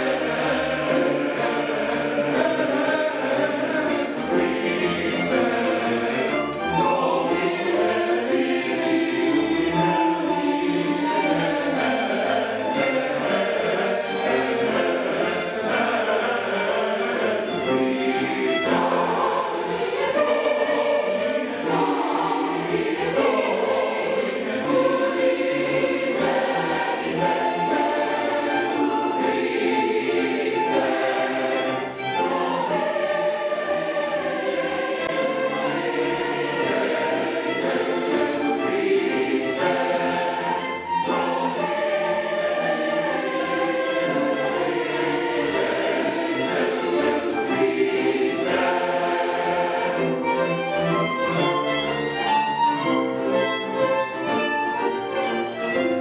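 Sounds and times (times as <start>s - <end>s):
choir singing with string orchestra: 0.0s - 56.0s.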